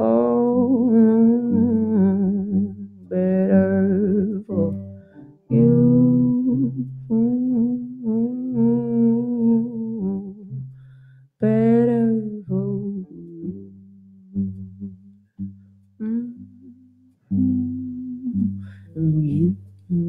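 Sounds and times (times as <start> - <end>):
woman singing long notes: 0.0 - 10.6, 11.4 - 20.0.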